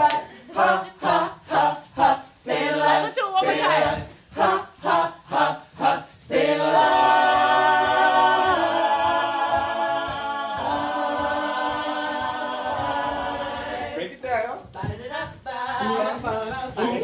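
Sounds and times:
mixed choir singing a cappella: 0:00.0 - 0:14.2, 0:14.8 - 0:17.0.

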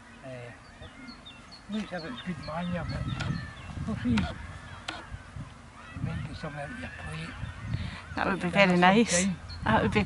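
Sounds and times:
wind buffeting microphone: 0:00.7 - 0:10.0.

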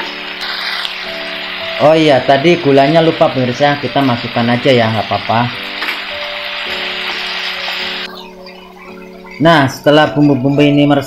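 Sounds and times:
beef sizzling in a wok: 0:00.0 - 0:08.3
soft background music: 0:00.0 - 0:11.0.

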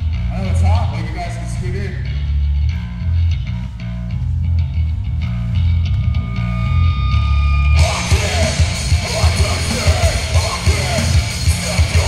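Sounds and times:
heavy guitar and bass riff: 0:00.0 - 0:12.0
drums and cymbals: 0:07.8 - 0:12.0.

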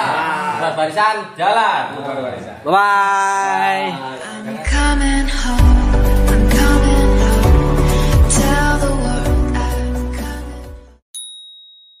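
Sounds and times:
outro music: 0:04.7 - 0:11.0
high clear ding: 0:11.2 - 0:12.0.

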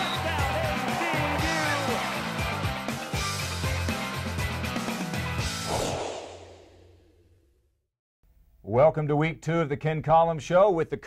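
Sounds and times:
whoosh effect: 0:05.6 - 0:07.0.

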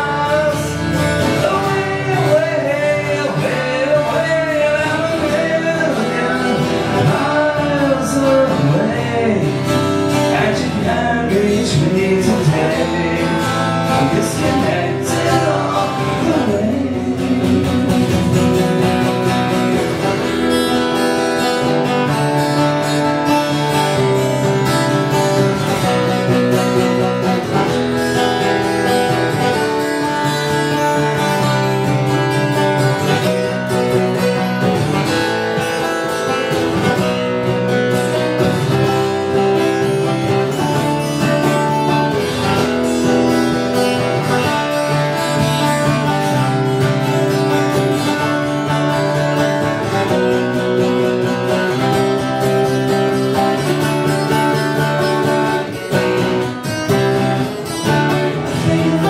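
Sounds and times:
acoustic guitars strumming chords: 0:00.0 - 0:59.0.

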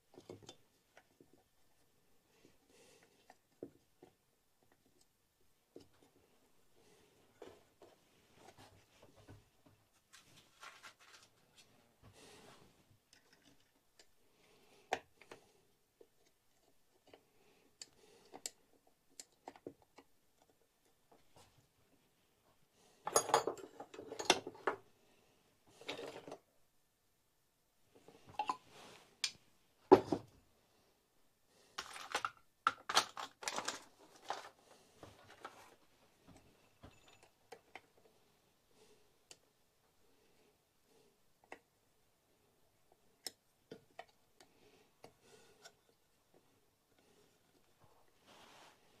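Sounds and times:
parts rattling and scraping: 0:31.7 - 0:38.1
metal and plastic parts clicking: 0:31.8 - 0:34.5.

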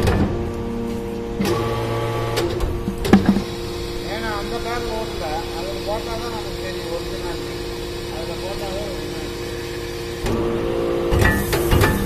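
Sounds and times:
briquetting press humming: 0:00.0 - 0:12.0
machine clanking: 0:02.4 - 0:03.6.

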